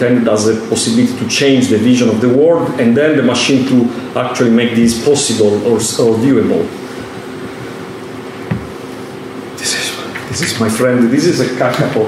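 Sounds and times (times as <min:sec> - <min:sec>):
low room hum: 0:00.0 - 0:12.0
soft knock: 0:08.5 - 0:08.8.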